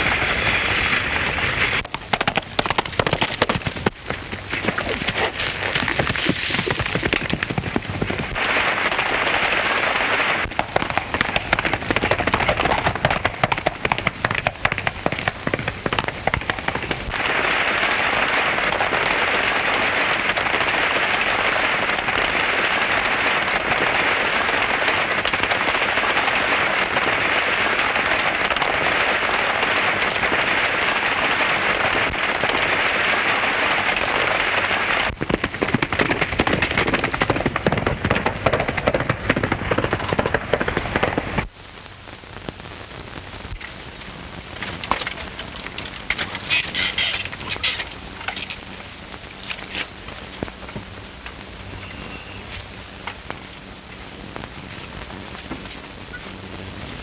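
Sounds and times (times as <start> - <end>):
galloping hooves clattering: 1.8 - 8.4, 10.5 - 17.2, 35.1 - 41.5, 44.6 - 53.2.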